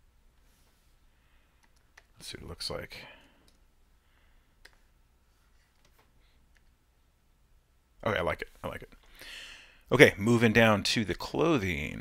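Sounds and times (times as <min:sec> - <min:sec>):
computer mouse clicks: 0:01.6 - 0:02.2, 0:03.4 - 0:03.6, 0:04.6 - 0:04.9, 0:05.7 - 0:06.8.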